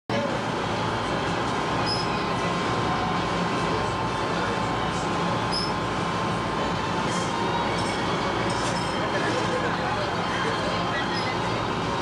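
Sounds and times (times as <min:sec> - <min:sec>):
boat engines droning: 0:00.1 - 0:12.0.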